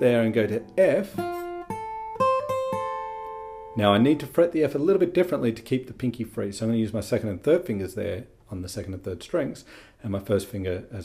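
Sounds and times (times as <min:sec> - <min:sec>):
acoustic guitar notes: 0:00.0 - 0:06.2.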